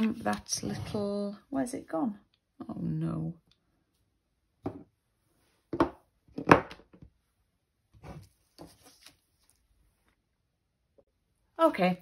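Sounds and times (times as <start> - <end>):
objects knocking on tabletop: 4.6 - 4.9, 5.7 - 7.0.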